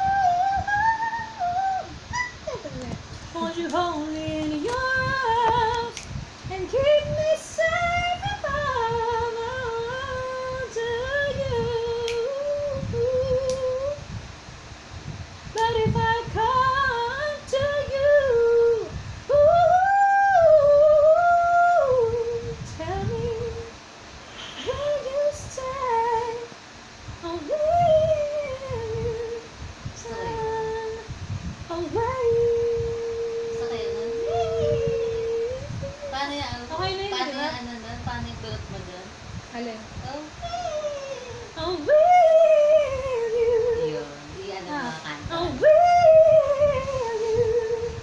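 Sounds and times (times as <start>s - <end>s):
woman singing unaccompanied: 0.0s - 14.2s, 15.4s - 23.9s, 24.6s - 48.0s.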